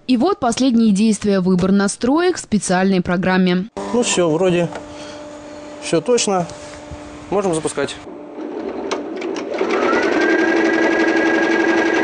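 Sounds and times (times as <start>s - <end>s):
embroidery machine stitching: 8.4s - 12.0s.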